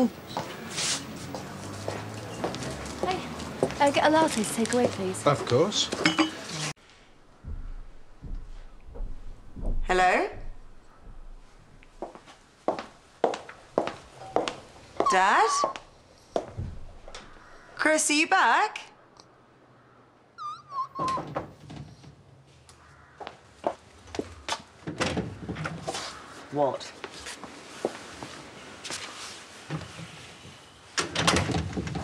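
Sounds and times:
crockery clinking: 6.0 - 6.5
high-pitched squeak: 15.0 - 15.9, 20.4 - 21.3.

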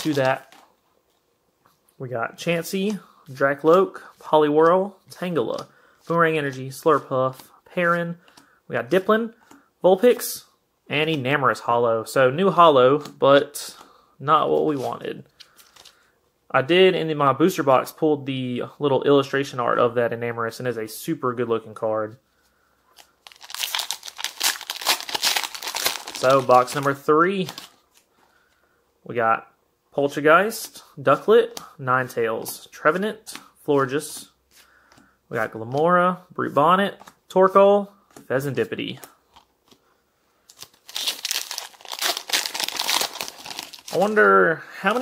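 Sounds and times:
foil wrapper crinkling and tearing: 23.0 - 26.8, 40.5 - 44.2.

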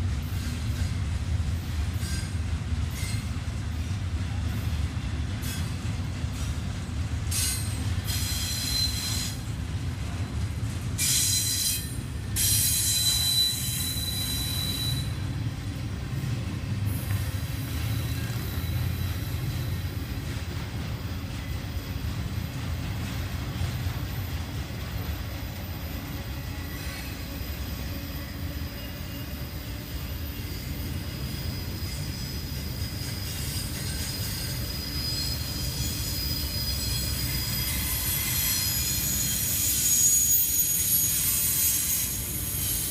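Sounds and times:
train wheels rumbling on rail: 0.0 - 42.9
high-pitched wheel squeal: 7.4 - 9.4, 11.0 - 15.3, 17.4 - 19.8, 26.4 - 42.9.

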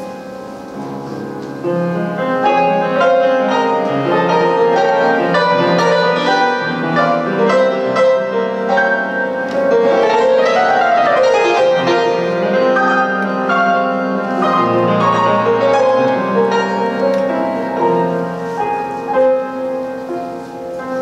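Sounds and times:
upright piano melody: 0.0 - 21.0.

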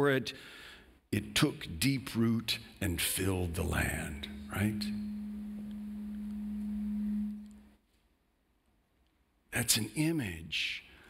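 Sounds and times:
low steady pure tone: 2.6 - 7.8.

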